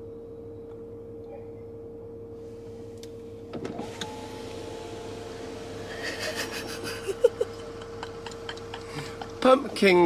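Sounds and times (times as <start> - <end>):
power window motor whine: 2.4 - 8.7.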